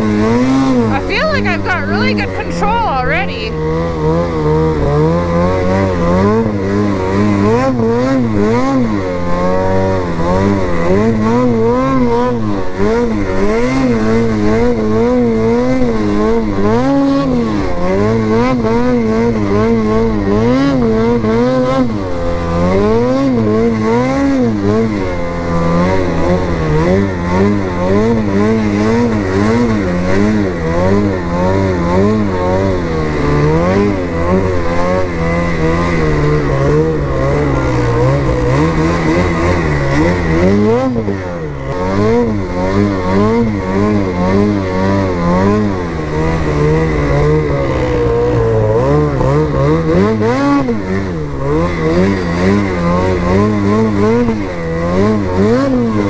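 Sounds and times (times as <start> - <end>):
snowmobile engine revving: 0.0 - 56.0.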